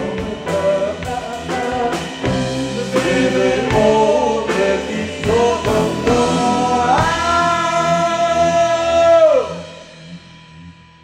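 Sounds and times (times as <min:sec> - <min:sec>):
drum hits: 0:00.0 - 0:09.5
rock band playing with singing: 0:00.0 - 0:10.6.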